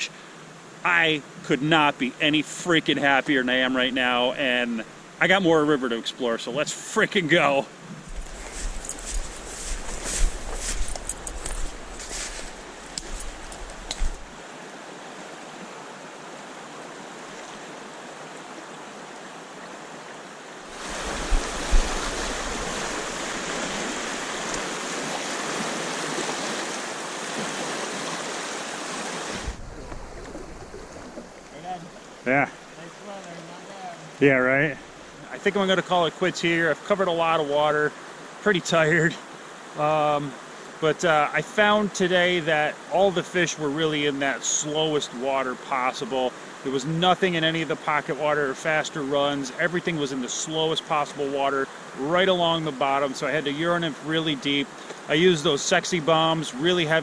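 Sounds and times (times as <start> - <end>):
stream water rushing: 0.0 - 57.0
wind rumble on microphone: 8.0 - 14.4, 20.8 - 24.5, 29.3 - 31.3.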